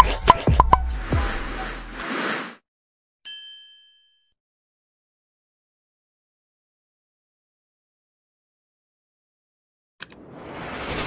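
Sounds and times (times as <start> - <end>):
bright bell-like ding: 3.3 - 4.4.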